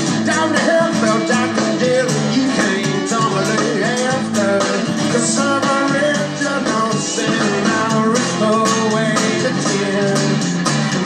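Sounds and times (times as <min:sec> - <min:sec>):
rock band playing on television: 0:00.0 - 0:11.0.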